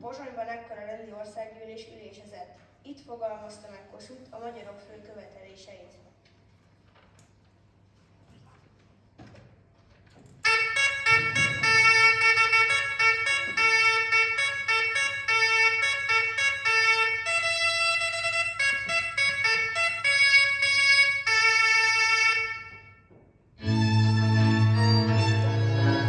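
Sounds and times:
violin melody: 0:10.4 - 0:22.5, 0:23.6 - 0:26.0.

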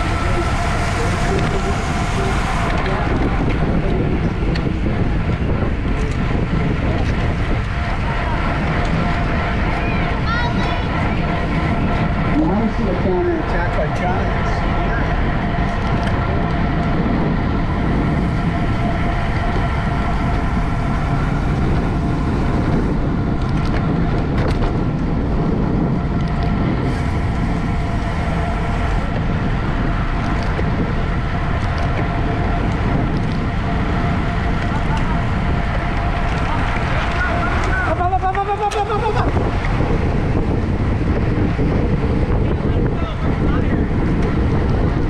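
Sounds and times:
wind rushing over microphone: 0:00.0 - 0:45.0.

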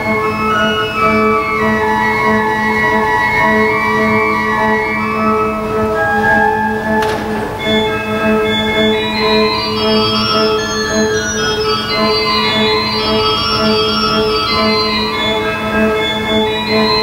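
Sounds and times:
pipe organ playing: 0:00.0 - 0:17.0.

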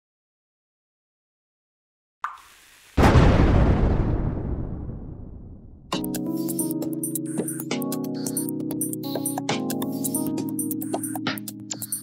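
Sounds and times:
loud explosion blast: 0:03.0 - 0:06.0.

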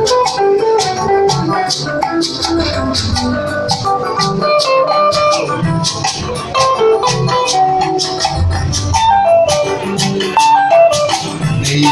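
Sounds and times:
live band music: 0:00.0 - 0:11.9.

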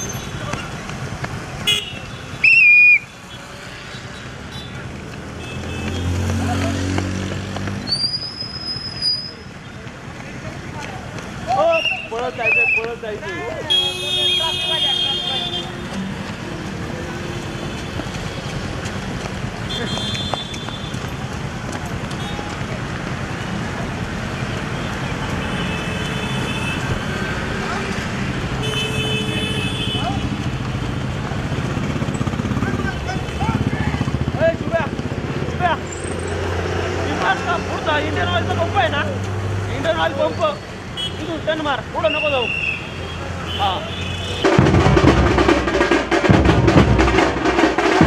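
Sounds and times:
traffic engines running: 0:00.0 - 0:48.0
car horn blasts: 0:01.6 - 0:02.3, 0:13.7 - 0:16.2, 0:19.7 - 0:21.0, 0:25.4 - 0:26.9, 0:28.6 - 0:30.2
people calling out: 0:11.4 - 0:17.5.

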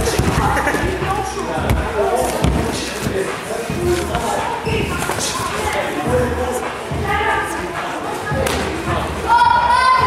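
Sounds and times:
boxing glove and kick thuds: 0:08.4 - 0:08.8.

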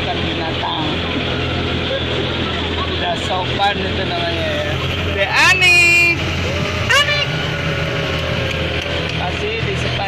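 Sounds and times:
boat engine droning: 0:00.0 - 0:10.0.

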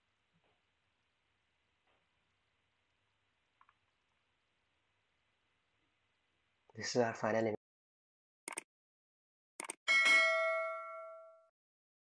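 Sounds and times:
bright bell ding: 0:09.9 - 0:11.5.

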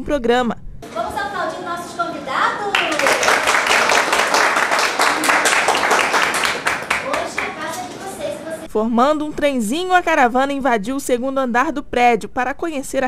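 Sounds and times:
small group clapping: 0:02.6 - 0:08.0.

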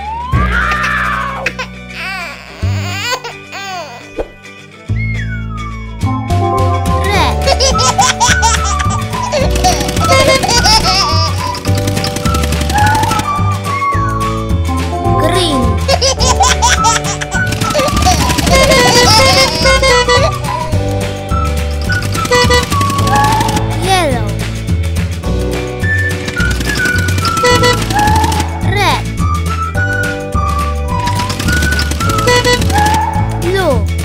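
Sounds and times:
cartoon music with bass: 0:00.0 - 0:34.0
cartoon voice giggling: 0:07.0 - 0:11.6, 0:15.8 - 0:20.4.

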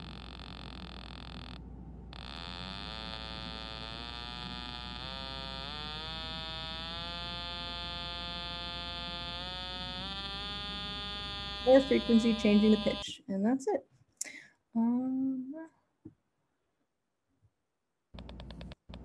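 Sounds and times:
buzzy sawtooth oscillator tone: 0:00.0 - 0:13.1.

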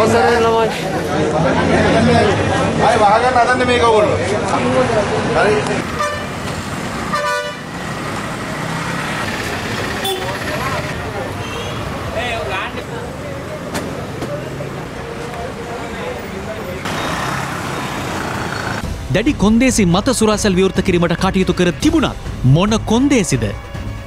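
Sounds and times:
crowd talking: 0:00.0 - 0:06.0, 0:09.3 - 0:23.7
traffic noise: 0:00.0 - 0:24.0
vehicle horn tooting: 0:05.9 - 0:06.4, 0:07.1 - 0:07.7, 0:10.0 - 0:10.7, 0:11.4 - 0:11.9.

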